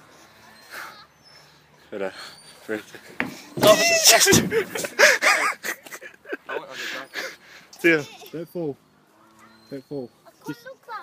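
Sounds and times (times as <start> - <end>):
young man laughing: 3.6 - 7.4.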